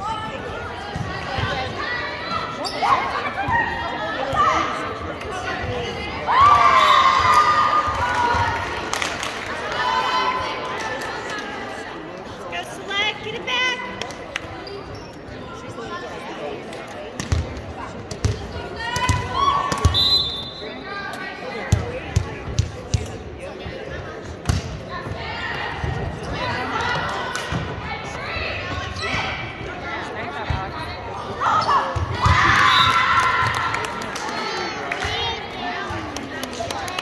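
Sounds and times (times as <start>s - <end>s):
players calling and shouting: 0.0s - 8.8s, 17.2s - 36.9s.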